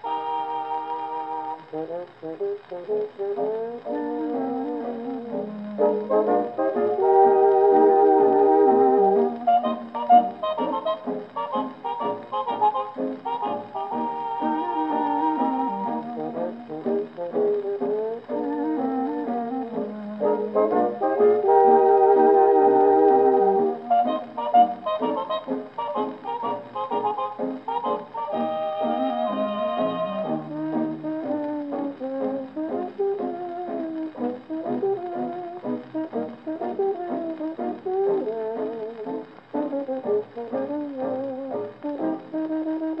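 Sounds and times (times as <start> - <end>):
dance orchestra record with brass: 0.0 - 43.0.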